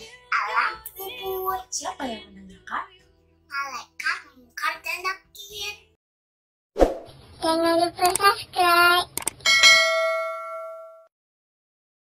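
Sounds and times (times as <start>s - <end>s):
bell-like ding: 9.5s - 11.1s.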